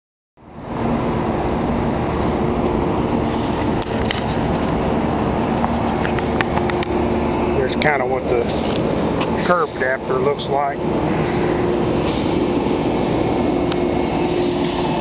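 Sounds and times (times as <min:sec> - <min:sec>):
hvac unit humming: 0:00.4 - 0:15.0.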